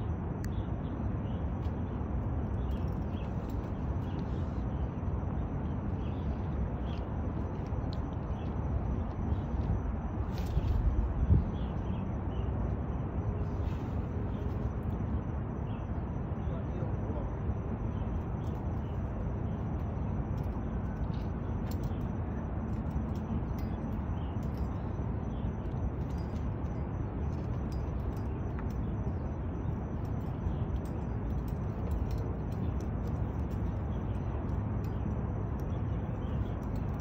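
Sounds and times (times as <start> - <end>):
wind rumble on microphone: 0.0 - 37.0.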